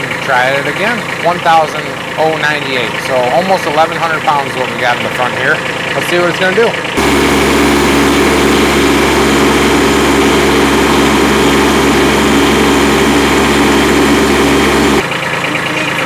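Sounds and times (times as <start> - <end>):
diesel tractor engine running: 0.0 - 16.0.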